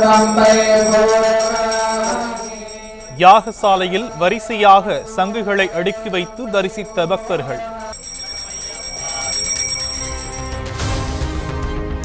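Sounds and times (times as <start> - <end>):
held chanted note: 0.0 - 10.6.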